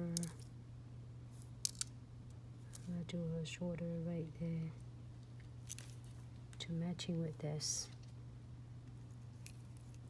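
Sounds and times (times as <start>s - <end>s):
steady low hum: 0.0s - 10.0s
crystals clicking on plastic tray: 0.2s - 0.4s.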